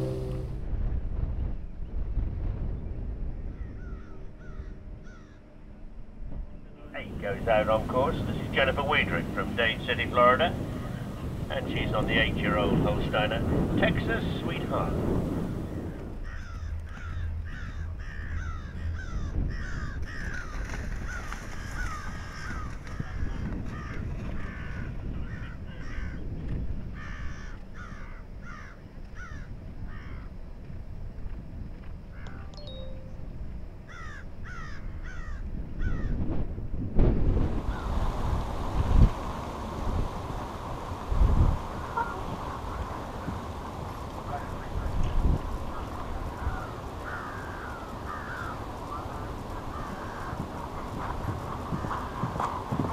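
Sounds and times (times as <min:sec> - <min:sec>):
low rumble: 0:00.0 - 0:03.9
crows cawing: 0:03.6 - 0:05.4, 0:15.7 - 0:26.2, 0:27.0 - 0:30.3, 0:33.9 - 0:36.1, 0:37.7 - 0:38.0, 0:45.8 - 0:52.4.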